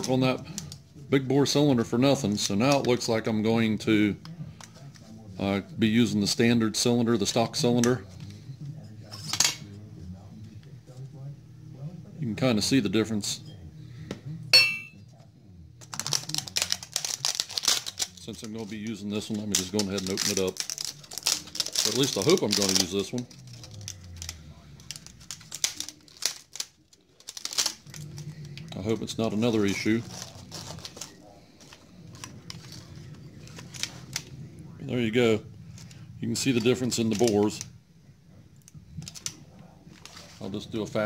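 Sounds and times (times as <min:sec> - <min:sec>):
plastic wrapping crinkling: 0:15.8 - 0:34.4, 0:35.7 - 0:37.7, 0:39.0 - 0:41.0.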